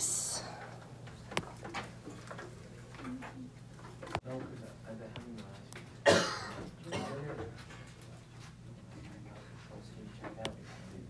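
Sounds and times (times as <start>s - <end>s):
low room hum: 0.0s - 11.0s
light irregular ticks and clicks: 0.6s - 6.0s.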